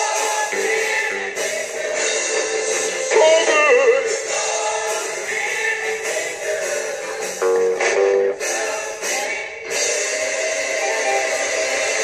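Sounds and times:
person singing gospel: 0.0 - 12.0.

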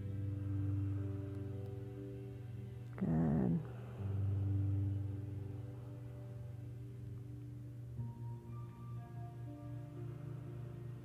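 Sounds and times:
soft ambient music: 0.0 - 11.0.

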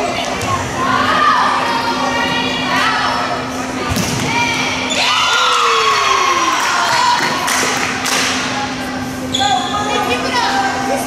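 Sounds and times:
steady low hum: 0.0 - 11.0
crowd cheering and shouting: 4.2 - 8.0.

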